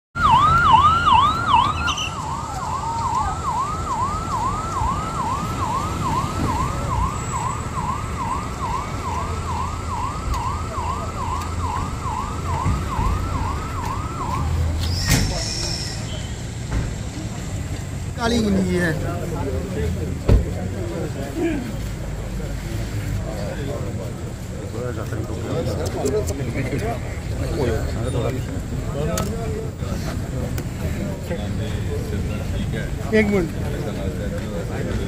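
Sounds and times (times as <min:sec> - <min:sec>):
vehicle siren sweeping: 0:00.2 - 0:15.0
low traffic rumble: 0:00.2 - 0:35.0.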